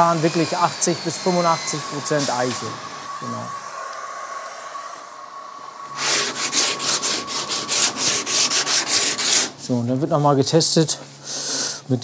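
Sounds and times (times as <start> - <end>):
hand-sanding wood: 0.0 - 2.7, 5.9 - 9.8.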